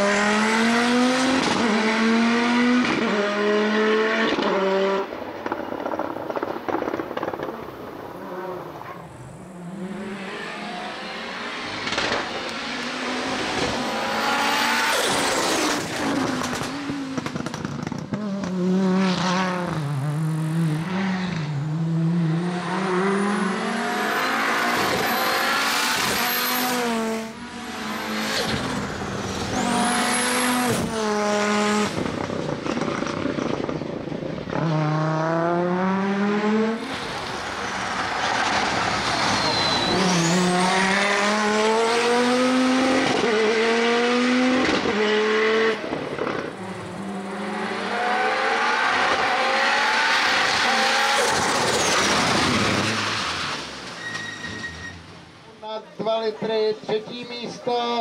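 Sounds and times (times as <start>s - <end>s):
rally car engine accelerating: 0.0s - 53.9s
high turbo whistle: 39.2s - 40.4s.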